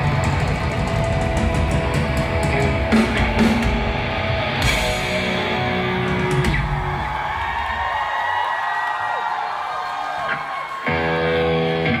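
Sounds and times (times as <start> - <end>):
live rock band playing: 0.0 - 7.4, 10.7 - 12.0.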